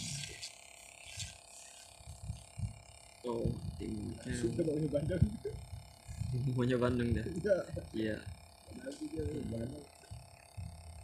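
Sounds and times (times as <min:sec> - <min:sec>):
soft low microphone thumps: 0:02.0 - 0:11.0.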